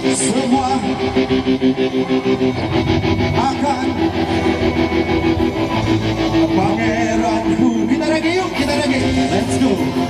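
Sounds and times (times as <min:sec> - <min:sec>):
electric guitar: 0:00.0 - 0:10.0.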